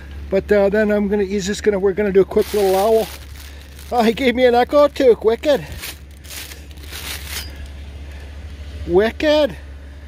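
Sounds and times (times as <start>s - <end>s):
steady low hum: 0.0s - 10.0s
rustling of chains and plastic: 2.3s - 7.8s.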